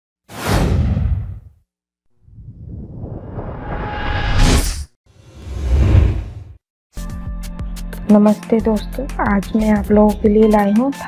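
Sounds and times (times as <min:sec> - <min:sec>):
whoosh: 0:02.2 - 0:06.6.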